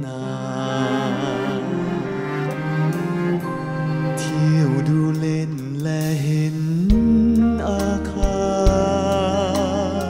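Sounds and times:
orchestral accompaniment: 0.0s - 10.0s.

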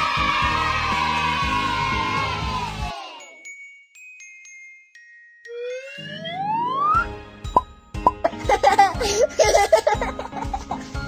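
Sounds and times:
rising whistle-like tone: 5.5s - 7.6s
music beat: 5.5s - 8.9s.

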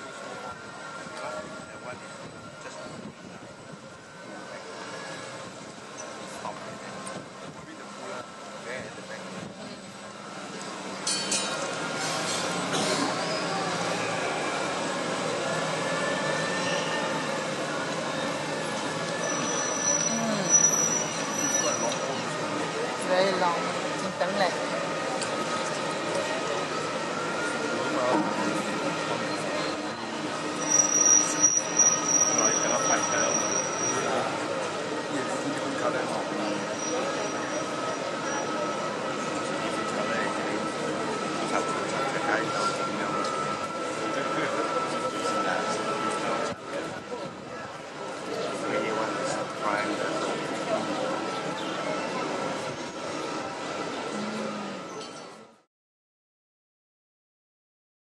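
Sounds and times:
faint voices: 0.0s - 55.6s
steel wheels squealing on rail: 0.0s - 55.6s
crowd chatter: 0.0s - 55.7s.

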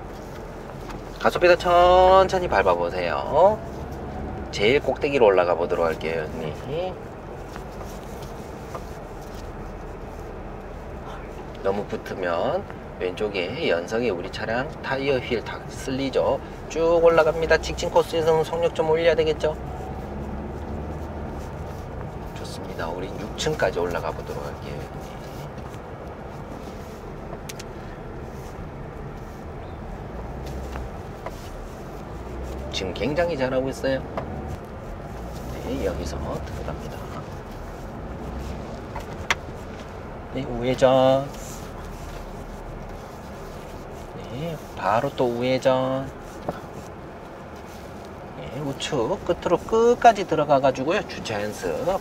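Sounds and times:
car engine and tyres rumbling: 0.0s - 52.0s.

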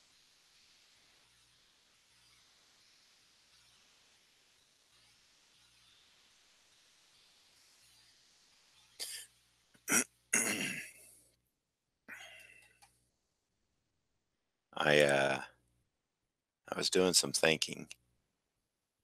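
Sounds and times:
faint room hiss: 0.0s - 11.5s, 12.1s - 13.6s, 14.8s - 15.8s, 16.7s - 18.3s
man coughing and clearing throat: 9.9s - 11.0s.

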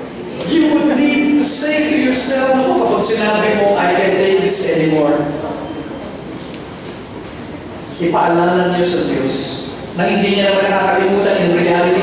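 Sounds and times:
large hall background hiss and rumble: 0.0s - 12.0s.

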